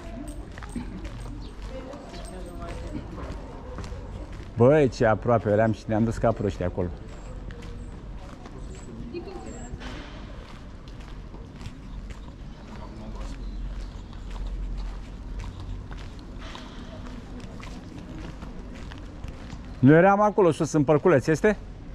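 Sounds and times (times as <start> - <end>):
footsteps on pavement: 0.0 - 21.9.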